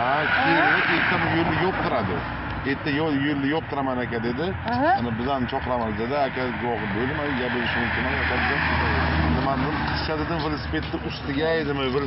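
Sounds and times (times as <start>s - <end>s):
person talking: 4.7s - 5.1s.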